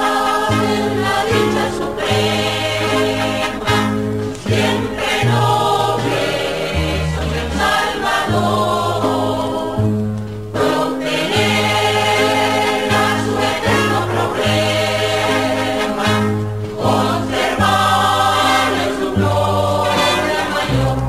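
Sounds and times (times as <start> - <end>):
choir singing: 0.0 - 21.0
held bass notes: 0.0 - 21.0.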